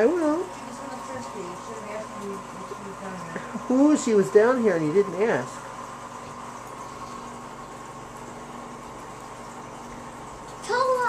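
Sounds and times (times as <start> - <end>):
aquarium filter hum and hiss: 0.0 - 11.0.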